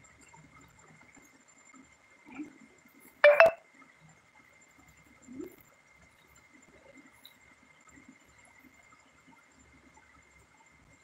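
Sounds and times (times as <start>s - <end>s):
two-note electronic beep: 3.2s - 3.6s.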